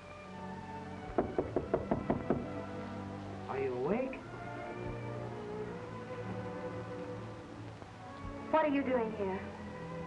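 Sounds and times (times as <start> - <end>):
film music: 0.0 - 10.0
knocking on a door: 1.1 - 2.6.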